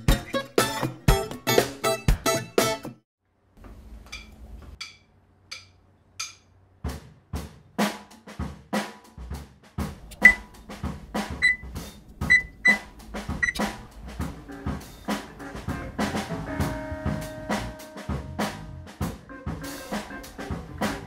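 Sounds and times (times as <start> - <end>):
background music with drum beat: 0.0 - 3.0, 6.2 - 21.0
held notes: 10.0 - 13.9.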